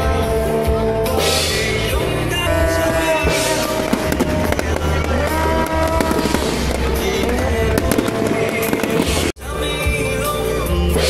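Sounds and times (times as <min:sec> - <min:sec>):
loud music: 0:00.0 - 0:11.0
fireworks crackling and popping: 0:01.5 - 0:09.4.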